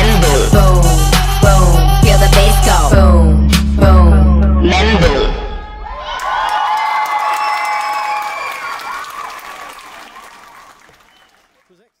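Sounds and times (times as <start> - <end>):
audience applauding and cheering: 5.9 - 12.0.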